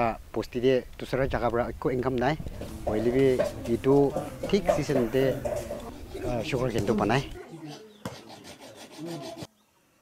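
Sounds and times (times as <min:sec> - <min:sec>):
man speaking: 0:00.0 - 0:07.9.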